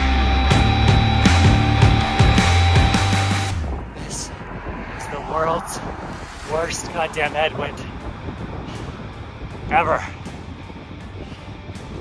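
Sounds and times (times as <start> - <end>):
heavy rock music: 0.0 - 8.6
wind rushing over microphone: 3.5 - 12.0.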